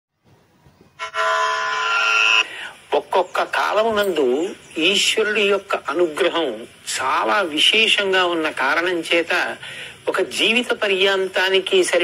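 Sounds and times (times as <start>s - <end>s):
loud horn-like tone: 1.0s - 2.6s.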